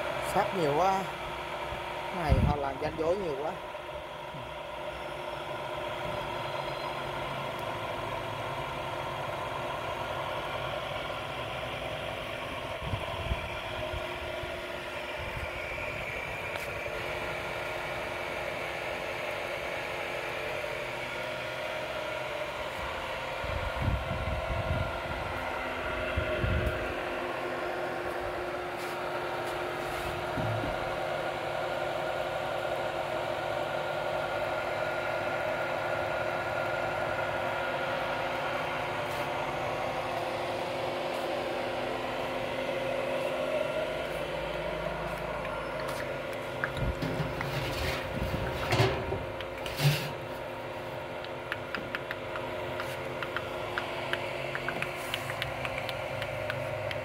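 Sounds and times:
electric pump motor humming: 0:00.0 - 0:57.0.

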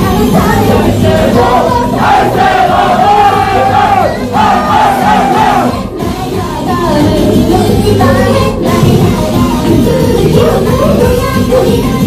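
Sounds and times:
backing music: 0:00.0 - 0:12.0
audience shouting in unison: 0:01.0 - 0:05.7.

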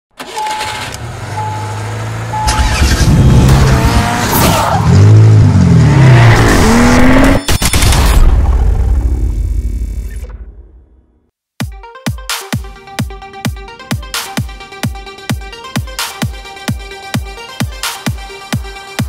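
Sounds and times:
car engine revving: 0:00.2 - 0:07.4
short beeps: 0:01.4 - 0:01.7.

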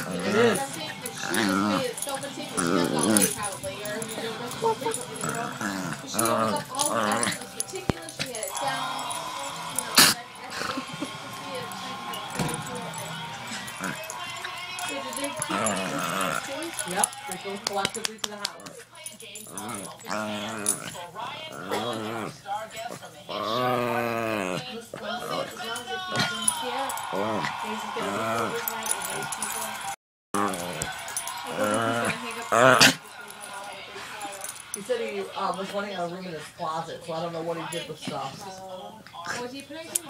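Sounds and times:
collar tags jingling: 0:00.0 - 0:23.7, 0:24.7 - 0:40.0
people talking: 0:00.0 - 0:40.0.

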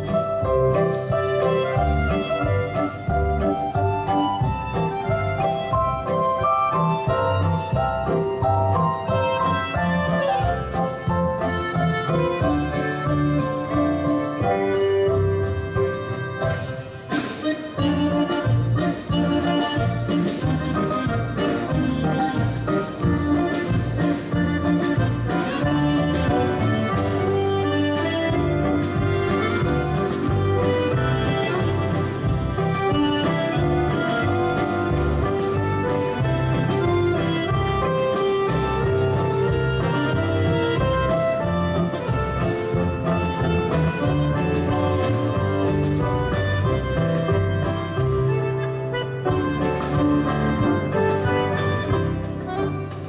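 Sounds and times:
accordion melody: 0:00.0 - 0:53.0
instrumental band playing: 0:00.0 - 0:53.0.

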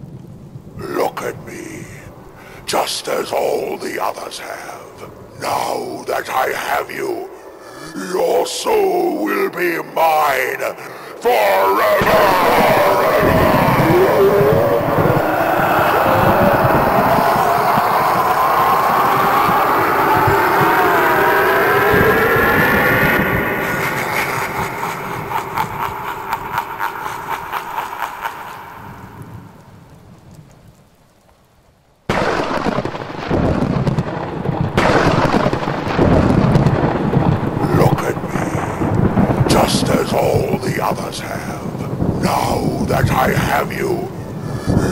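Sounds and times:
crackle: 0:00.0 - 0:44.9
thunder-like rumble: 0:11.8 - 0:30.5, 0:32.1 - 0:44.9
eerie rumble with gliding tones: 0:12.0 - 0:29.1.

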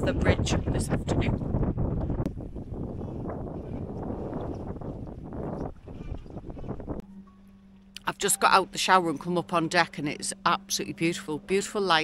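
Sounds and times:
wind buffeting microphone: 0:00.0 - 0:07.1.

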